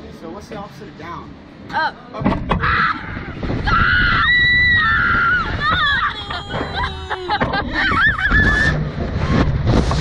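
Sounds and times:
wind rushing on microphone: 2.4s - 10.0s
girl screaming: 2.6s - 8.8s.

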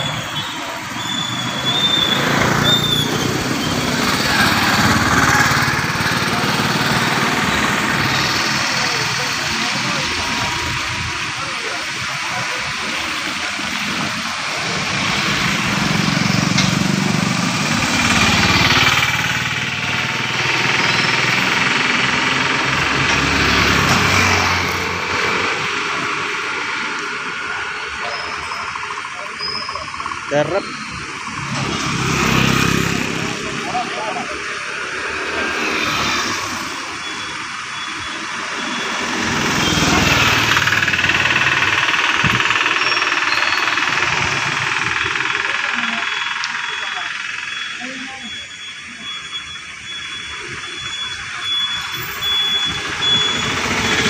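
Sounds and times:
people chattering: 0.0s - 54.0s
car passing: 31.2s - 37.1s
motorcycle engine passing: 31.3s - 36.7s, 38.6s - 48.0s.

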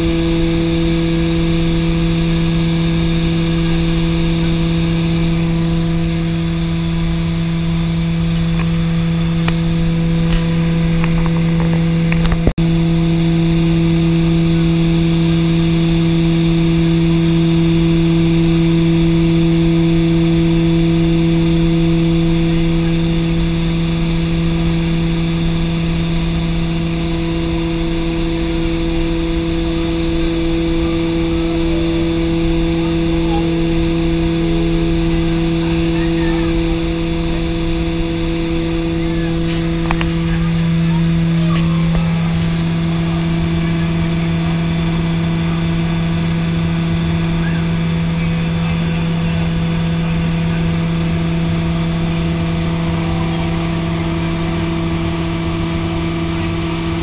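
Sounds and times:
turboprop engines droning: 0.0s - 57.0s.

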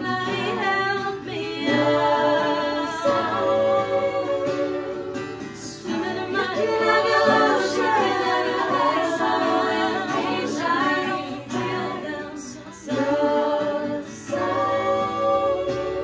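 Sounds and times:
strummed acoustic guitar: 0.0s - 16.0s
women singing in harmony: 0.0s - 16.0s.

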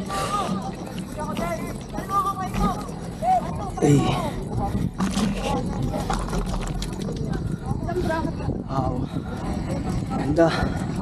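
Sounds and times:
wind rumble on microphone: 0.0s - 11.0s
bike tyres knocking and crunching: 4.5s - 7.6s.

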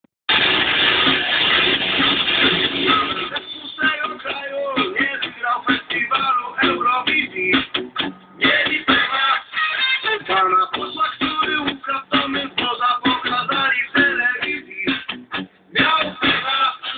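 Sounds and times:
music playing: 0.3s - 16.9s.

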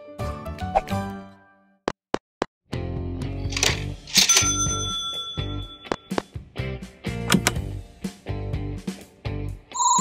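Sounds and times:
background music: 0.0s - 1.8s, 2.7s - 10.0s
cash register metallic hit: 3.6s - 5.7s
bright bell ring: 4.3s - 6.0s, 9.8s - 10.0s.

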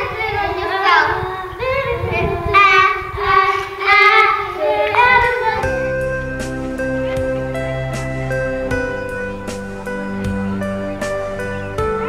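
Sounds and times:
children singing: 0.0s - 12.0s
plucked guitar music: 5.4s - 12.0s.

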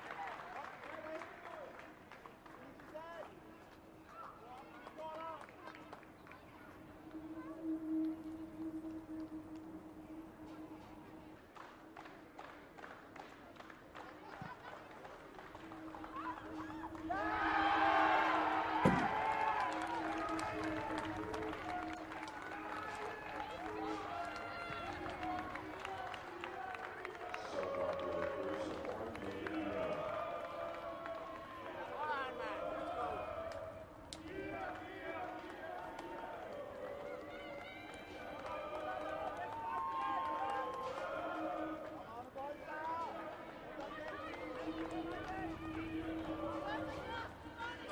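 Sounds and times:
stadium crowd background: 0.0s - 47.9s
low steady hum: 6.3s - 12.4s, 15.1s - 34.8s
voices talking and calling out: 14.3s - 47.9s
football players shouting: 15.5s - 26.2s.

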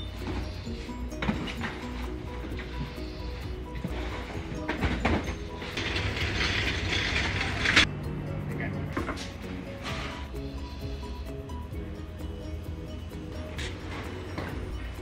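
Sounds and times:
cases rattling on metal shelving: 0.0s - 7.9s
rushing scrape: 0.0s - 7.9s, 9.1s - 11.2s
background music: 0.0s - 15.0s.

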